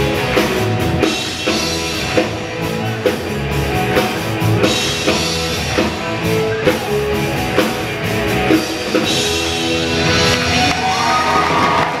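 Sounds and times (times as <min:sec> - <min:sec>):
rock band playing live: 0:00.0 - 0:12.0
audience cheering: 0:10.2 - 0:12.0.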